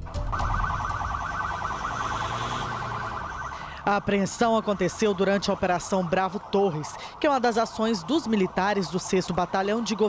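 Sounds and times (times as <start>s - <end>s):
road and engine rumble: 0.0s - 10.0s
police siren warbling: 0.2s - 10.0s.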